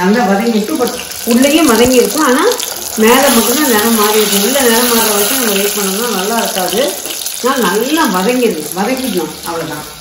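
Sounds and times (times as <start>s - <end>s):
onions frying in oil: 0.0s - 10.0s
woman talking: 0.0s - 10.0s.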